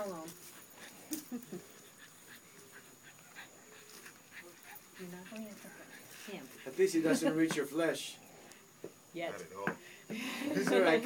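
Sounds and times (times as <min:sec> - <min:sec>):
dog panting: 0:00.3 - 0:08.1.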